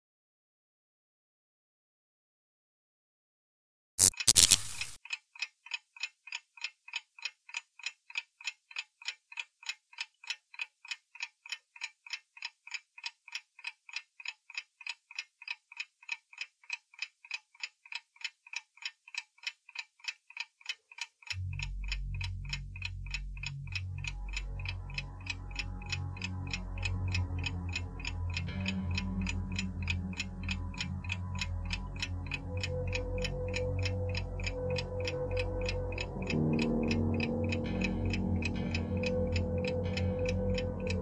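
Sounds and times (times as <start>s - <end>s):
clock ticking: 4.0s - 41.0s
low deep sound: 21.4s - 41.0s.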